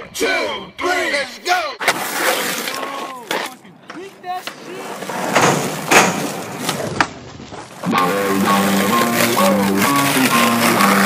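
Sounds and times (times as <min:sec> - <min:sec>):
skateboard clacking: 0:01.8 - 0:11.0
skateboard wheels rolling on concrete: 0:01.8 - 0:11.0.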